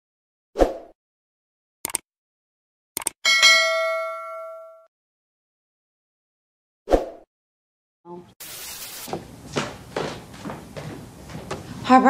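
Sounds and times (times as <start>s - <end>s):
double mouse click: 3.0s - 3.2s
bell ding: 3.2s - 4.9s.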